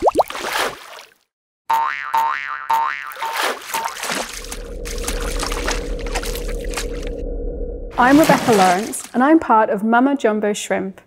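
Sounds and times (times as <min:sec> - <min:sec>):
noisy splashing: 0:00.0 - 0:01.2, 0:03.0 - 0:09.3
steady low drone: 0:04.4 - 0:08.3
swooping pitched tones: 0:04.5 - 0:08.7.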